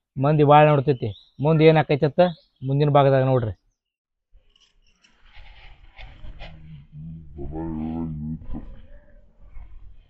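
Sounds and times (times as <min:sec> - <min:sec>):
faint outdoor background noise: 0:00.0 - 0:03.8.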